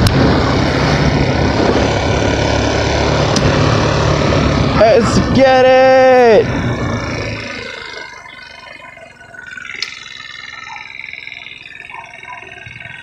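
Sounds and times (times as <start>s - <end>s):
scooter engine idling: 0.0s - 13.0s.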